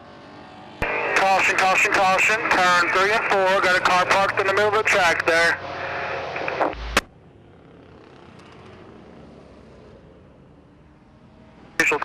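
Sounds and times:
distant race car engines droning: 0.0s - 12.0s.

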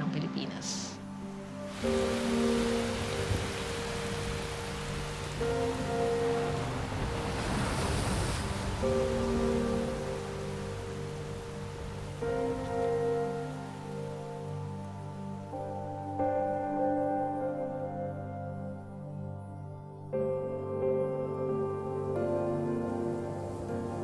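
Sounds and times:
soft background music: 0.0s - 24.0s
wind: 0.0s - 24.0s
heavy rain: 1.7s - 14.7s.

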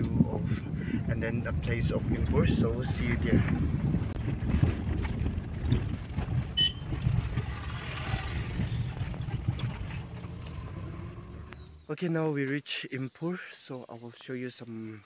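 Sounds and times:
car engine and road rumble: 0.0s - 12.3s.

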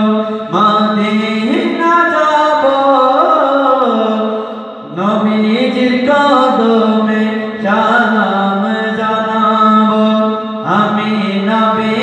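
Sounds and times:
man singing into a microphone: 0.0s - 12.0s.

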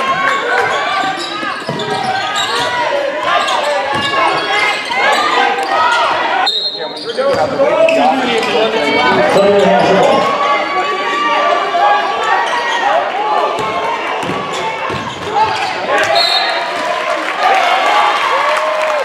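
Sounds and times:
voices in a gym: 0.0s - 18.5s
shoe squeaks: 0.7s - 10.3s.

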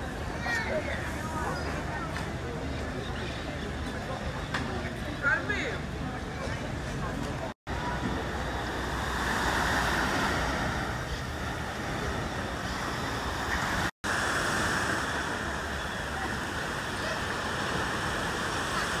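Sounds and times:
wind: 0.0s - 19.0s
sea surf rushing: 7.7s - 19.0s.

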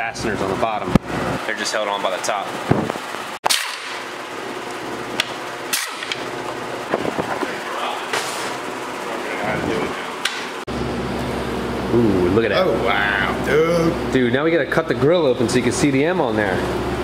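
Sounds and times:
steady shop hum: 0.0s - 17.0s.

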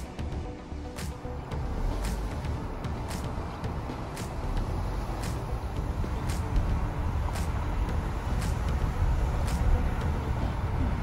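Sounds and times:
car road noise rumble: 0.0s - 11.0s.

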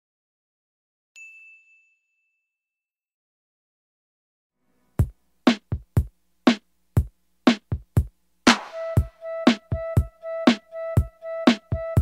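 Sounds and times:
high ding ringing: 1.2s - 2.6s.

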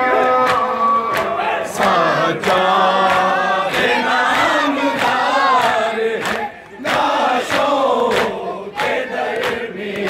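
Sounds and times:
crowd of men chanting: 0.0s - 10.0s.

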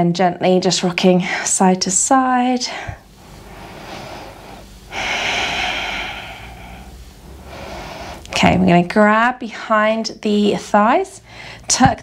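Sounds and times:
woman breathing: 2.6s - 8.4s, 11.2s - 11.7s.

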